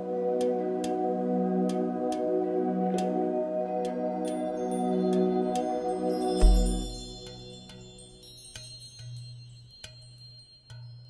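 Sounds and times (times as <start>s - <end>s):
bell-like chimes: 4.3s - 11.0s.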